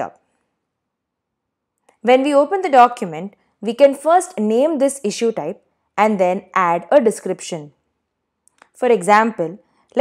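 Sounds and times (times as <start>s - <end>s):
woman narrating: 2.0s - 7.8s, 8.8s - 10.0s.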